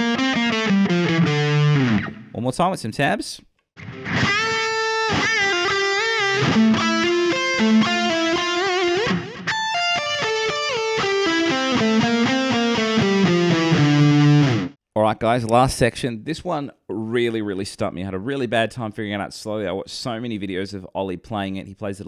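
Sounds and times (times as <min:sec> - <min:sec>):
distorted electric guitar solo: 0:00.0 - 0:02.3, 0:03.8 - 0:14.8.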